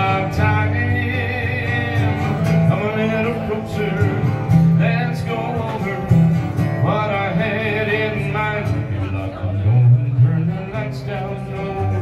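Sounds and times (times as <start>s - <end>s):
acoustic guitar strumming: 0.0s - 12.0s
man singing into microphone: 0.0s - 12.0s.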